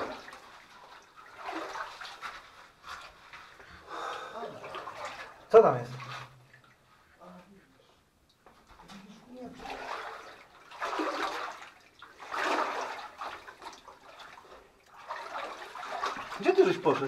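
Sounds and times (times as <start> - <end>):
footsteps splashing through water: 0.0 - 6.8, 8.6 - 17.0.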